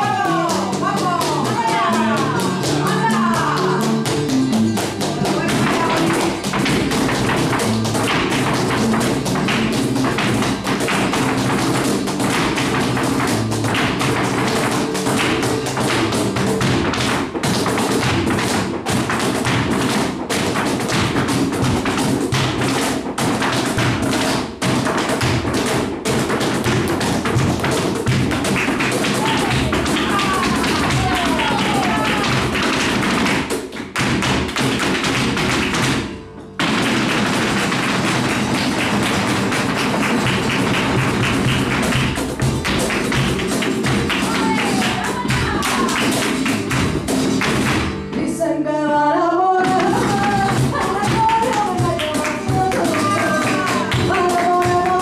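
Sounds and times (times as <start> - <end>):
hand clapping: 0.0 - 48.0, 49.6 - 55.0
dancer's footwork taps: 0.0 - 48.2, 49.6 - 55.0
guitar: 0.0 - 55.0.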